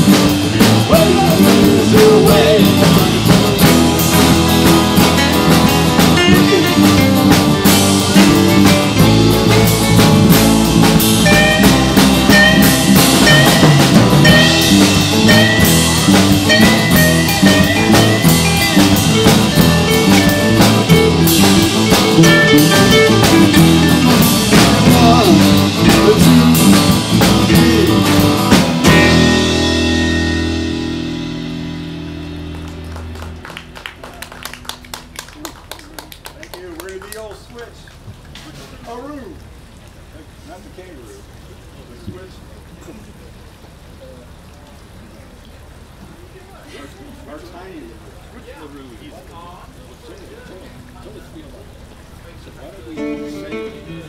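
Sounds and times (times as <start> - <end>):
live blues band playing: 0.0 - 37.1, 50.8 - 54.0
faint voices: 40.0 - 54.0.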